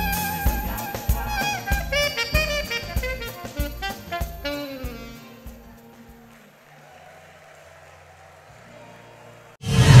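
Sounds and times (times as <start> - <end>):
loud logo intro sound: 9.6 - 10.0.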